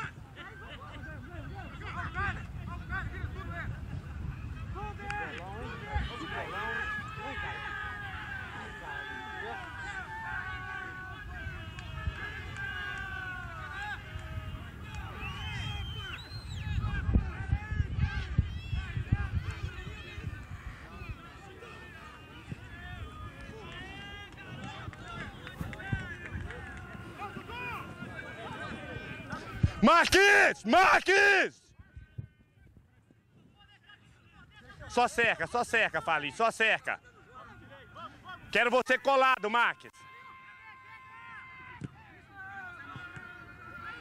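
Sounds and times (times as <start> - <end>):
players shouting distant: 0.0 - 44.0
voices talking and calling out: 0.0 - 44.0.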